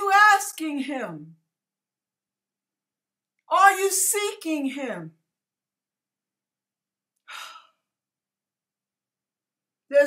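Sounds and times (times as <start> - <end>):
woman breathing: 7.2 - 8.0.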